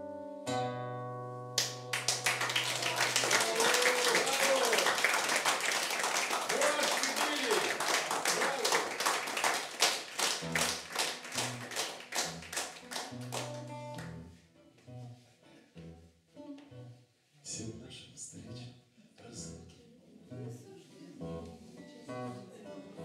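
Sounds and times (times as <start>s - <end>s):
guitar chord ringing: 0.0s - 1.9s
audience applauding: 1.6s - 14.1s.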